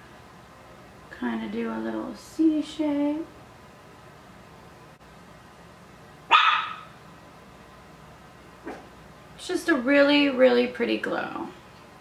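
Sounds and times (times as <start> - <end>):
dog barking: 6.3 - 7.0, 8.6 - 8.9.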